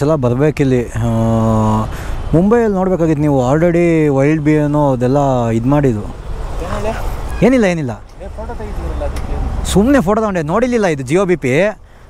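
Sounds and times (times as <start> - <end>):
man's voice: 0.0 - 11.8.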